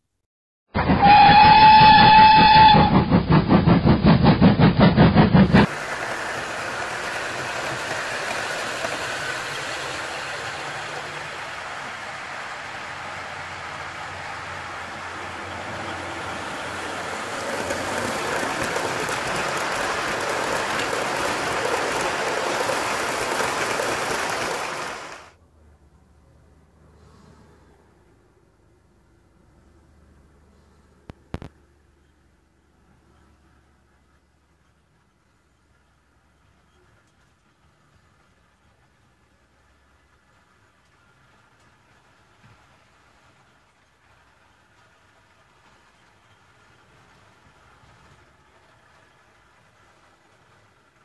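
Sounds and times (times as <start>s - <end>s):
train horn: 0.8s - 3.1s
train rhythmic pulsing: 0.8s - 25.4s, 33.5s - 51.0s
model trains whirring hiss: 1.0s - 25.4s, 32.9s - 51.0s.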